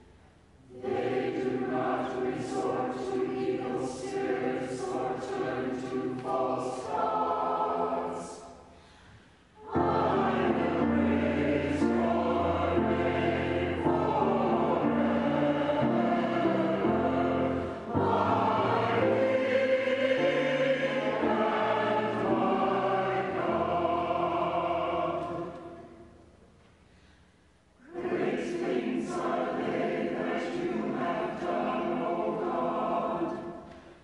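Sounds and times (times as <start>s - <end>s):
choir chanting in parts: 0.6s - 8.7s, 9.6s - 26.2s, 27.8s - 33.8s.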